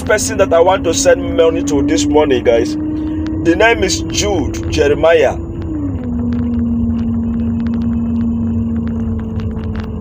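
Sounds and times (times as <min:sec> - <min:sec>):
car engine rumble: 0:00.0 - 0:10.0
steady hum: 0:00.0 - 0:10.0.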